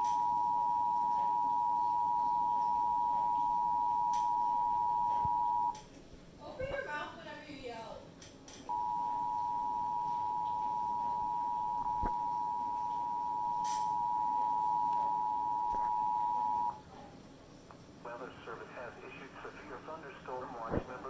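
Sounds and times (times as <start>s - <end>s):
two-tone alert signal: 0.0s - 5.8s, 8.7s - 16.8s.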